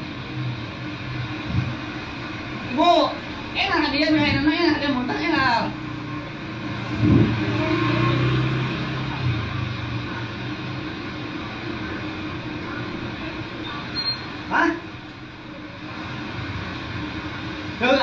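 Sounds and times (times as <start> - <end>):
low hum: 0.0 - 17.8.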